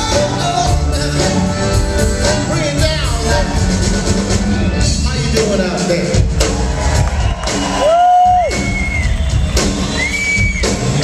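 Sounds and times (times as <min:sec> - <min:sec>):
live rock band playing: 0:00.0 - 0:11.0
crowd cheering: 0:06.4 - 0:11.0.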